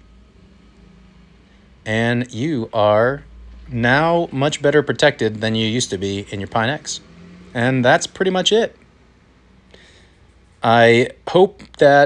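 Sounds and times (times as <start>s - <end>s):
low room hum: 0.0s - 12.0s
man talking: 1.9s - 7.0s, 7.6s - 8.8s, 10.6s - 12.0s.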